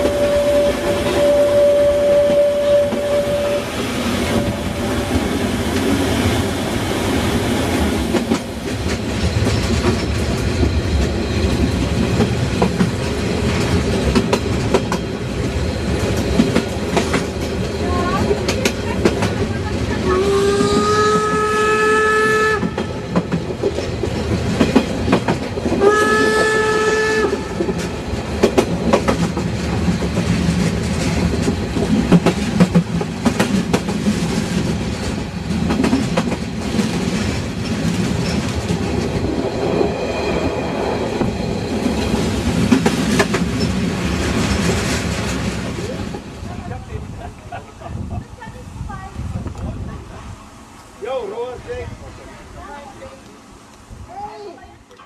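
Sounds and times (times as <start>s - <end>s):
locomotive whistle: 0.0s - 5.2s, 20.1s - 23.0s, 25.8s - 27.7s
train wheels clicking over rail joints: 2.1s - 21.5s, 22.5s - 46.4s.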